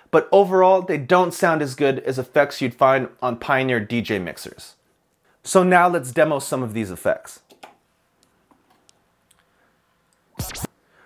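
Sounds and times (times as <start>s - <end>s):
record scratch: 10.4s - 10.7s.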